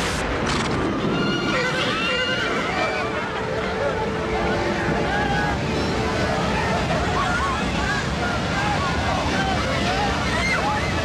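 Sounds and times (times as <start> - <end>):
dense steady roar: 0.0 - 11.0.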